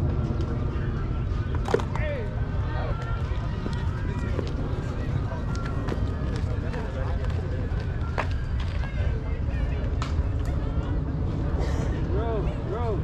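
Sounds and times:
steady low rumble: 0:00.0 - 0:13.0.

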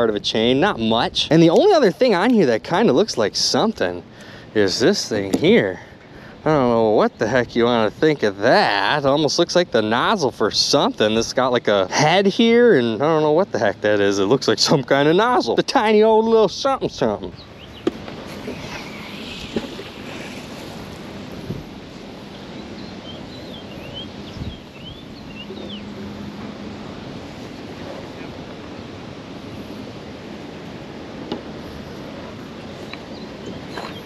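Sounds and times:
wind noise on microphone: 0:16.7 - 0:34.0
water lapping at dock: 0:17.4 - 0:34.0.

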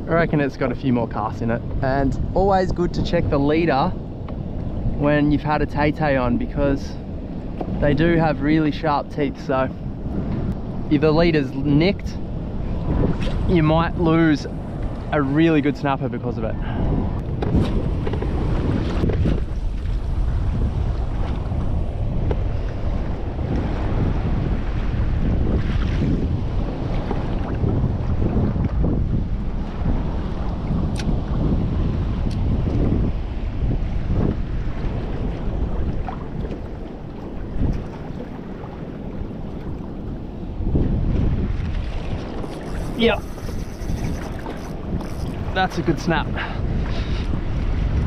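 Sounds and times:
waves slapping against hull: 0:00.0 - 0:48.0
wind rumbling on microphone: 0:00.0 - 0:48.0.

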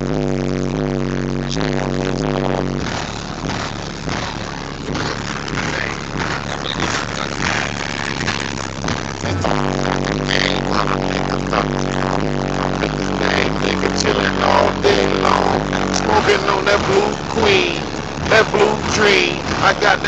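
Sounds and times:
rap music with heavy bass: 0:00.0 - 0:20.0.

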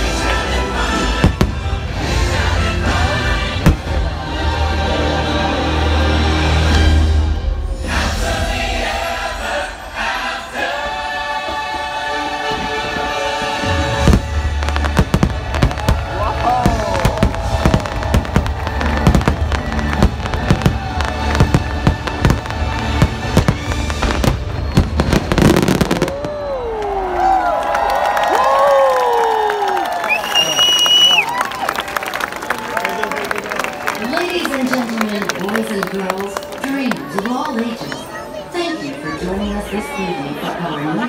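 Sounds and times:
orchestral music with choir: 0:00.0 - 0:26.1
crowd cheering: 0:08.8 - 0:41.0
fireworks banging: 0:13.9 - 0:26.4.

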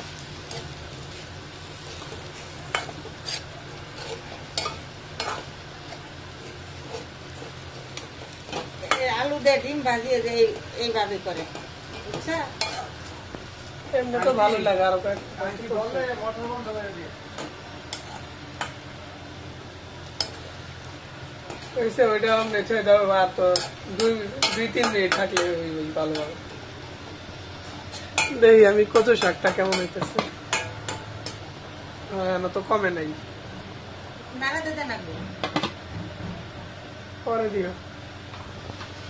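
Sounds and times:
food sizzling in a wok: 0:00.0 - 0:39.0
steady low hum: 0:00.0 - 0:39.0
metal spatula scraping pan: 0:02.8 - 0:06.0
utensils clinking against steel pots: 0:23.5 - 0:26.4, 0:27.9 - 0:31.4.

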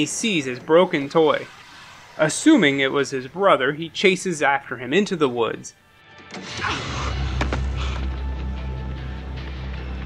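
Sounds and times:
low droning film score: 0:00.0 - 0:10.0.

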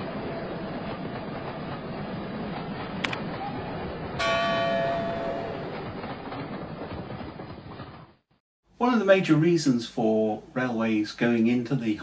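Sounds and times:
model train running on track: 0:00.0 - 0:08.2
sharp click: 0:03.0 - 0:03.2
bell-like chime: 0:04.2 - 0:05.9.

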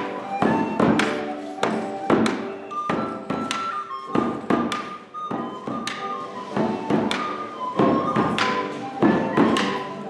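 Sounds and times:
plucked string instrument: 0:00.0 - 0:10.0
wooden pipe melody: 0:00.0 - 0:10.0.

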